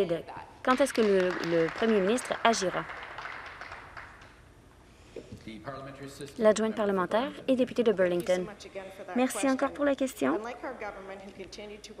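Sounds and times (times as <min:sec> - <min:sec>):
faint scattered applause: 0:00.7 - 0:04.5.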